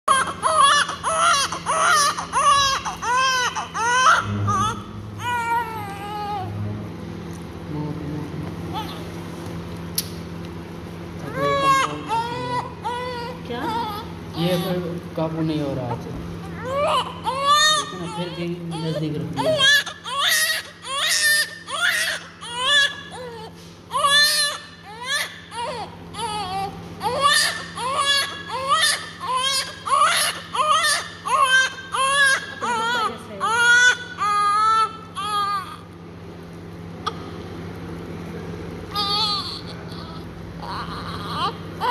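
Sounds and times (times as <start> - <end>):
steady low hum: 0.0 - 41.9
newborn baby crying: 0.1 - 6.6, 11.2 - 14.9, 15.8 - 35.9, 38.9 - 41.9.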